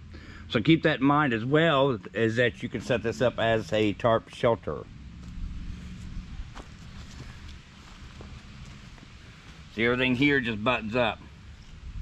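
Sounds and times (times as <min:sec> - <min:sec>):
low microphone rumble: 0:00.0 - 0:12.0
footsteps on dry woodland floor: 0:05.2 - 0:10.2.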